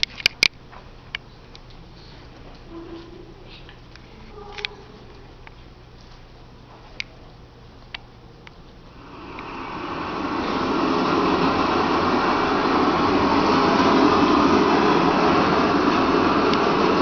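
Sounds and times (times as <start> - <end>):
steady rushing rumbling noise: 8.9 - 17.0.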